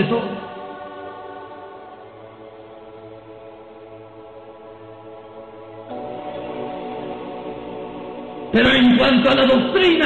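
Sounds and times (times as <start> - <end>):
soft sustained chord music: 0.0 - 10.0.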